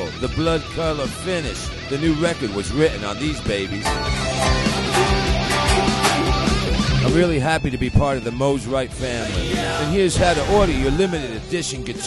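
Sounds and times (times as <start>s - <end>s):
electric guitar chords: 0.0s - 9.9s
steady drum beat: 3.8s - 7.3s.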